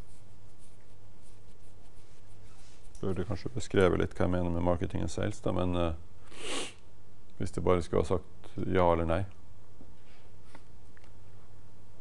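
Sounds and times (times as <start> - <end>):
faint scratches and rustles: 0.0 - 4.4
low room hum: 0.0 - 12.0.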